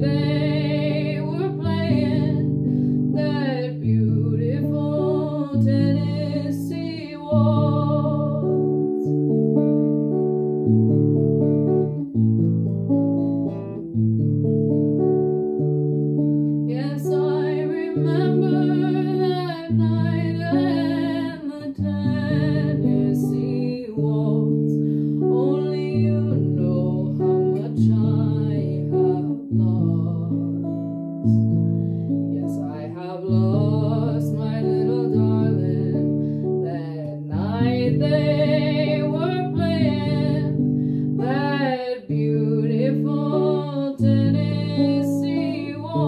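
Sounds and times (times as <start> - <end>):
woman singing with vibrato: 0.0 - 9.1, 16.7 - 31.4, 32.3 - 46.0
archtop guitar waltz: 0.0 - 46.0.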